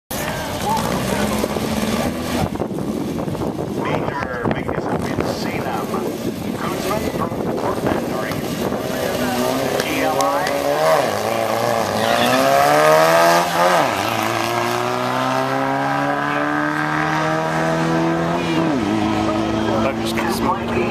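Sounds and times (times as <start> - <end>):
drag racing car engine revving: 0.1 - 20.9.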